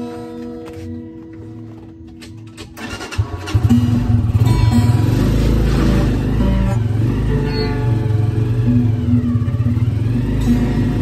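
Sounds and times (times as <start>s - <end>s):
acoustic guitar notes: 0.0s - 11.0s
vehicle engine rumble: 1.2s - 11.0s.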